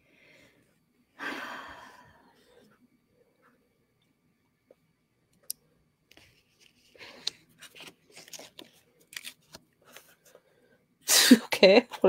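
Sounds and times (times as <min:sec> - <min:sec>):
book pages rustling: 0:06.1 - 0:10.4.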